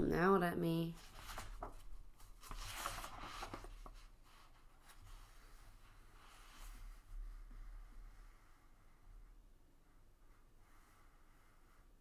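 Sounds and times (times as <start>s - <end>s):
book pages turning: 1.0s - 5.4s.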